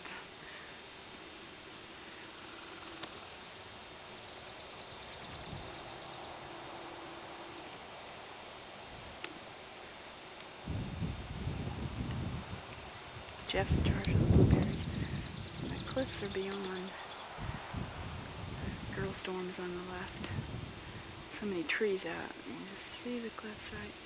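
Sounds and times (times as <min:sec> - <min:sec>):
insects buzzing: 0:00.4 - 0:11.4, 0:14.2 - 0:24.0
pulsing high insect trill: 0:01.4 - 0:03.5.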